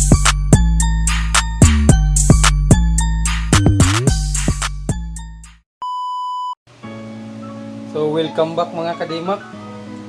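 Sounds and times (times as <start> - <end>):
background music: 0.0 - 5.6, 6.7 - 10.0
intro music: 0.0 - 5.6.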